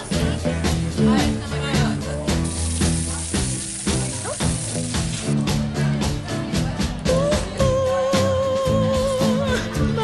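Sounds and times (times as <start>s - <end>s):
music with a steady beat: 0.0s - 10.0s
meat sizzling on a hotplate: 2.3s - 5.4s.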